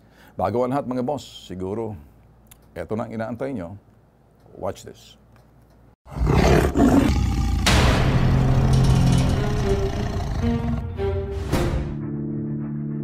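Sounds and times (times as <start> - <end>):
tiger roaring: 6.1 - 10.9
dramatic music with low tones: 7.5 - 13.0.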